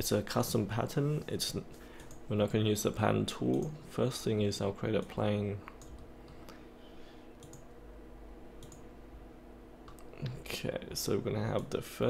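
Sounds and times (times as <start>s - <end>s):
low room hum: 0.0s - 12.0s
computer mouse clicks: 7.4s - 7.7s, 8.6s - 8.8s.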